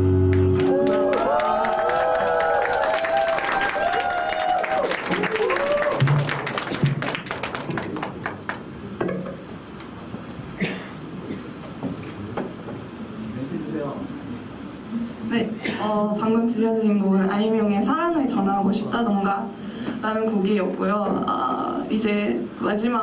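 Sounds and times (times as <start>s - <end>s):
audience clapping and whooping: 0.2s - 8.7s.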